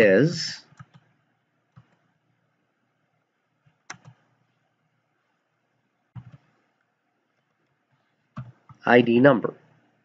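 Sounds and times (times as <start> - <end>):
keyboard keystrokes: 3.7 - 4.3, 6.1 - 6.5, 8.4 - 8.8.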